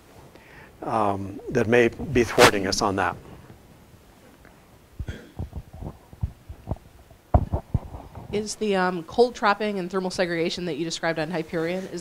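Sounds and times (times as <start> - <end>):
soft low thumps and knocks: 5.0 - 8.4.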